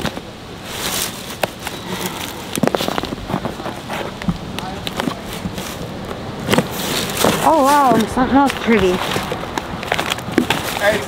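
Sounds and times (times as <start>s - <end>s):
cardboard flaps rustling: 0.0s - 11.0s.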